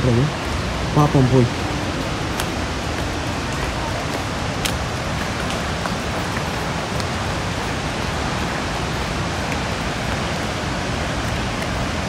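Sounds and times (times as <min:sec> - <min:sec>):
falling water rushing: 0:00.0 - 0:12.0.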